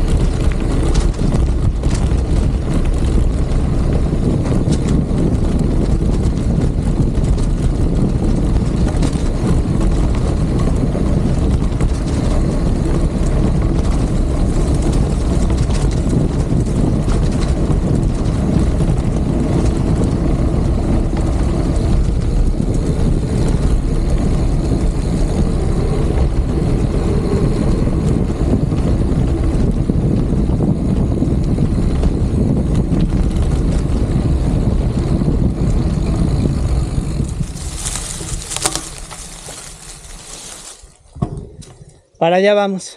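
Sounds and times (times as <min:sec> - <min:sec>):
tyres rumbling on dirt road: 0:00.0 - 0:41.9
wind buffeting microphone: 0:00.0 - 0:42.1.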